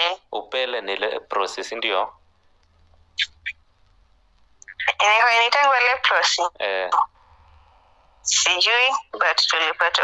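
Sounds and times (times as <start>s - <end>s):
faint low hum: 0.0s - 10.0s
person speaking: 4.6s - 10.0s.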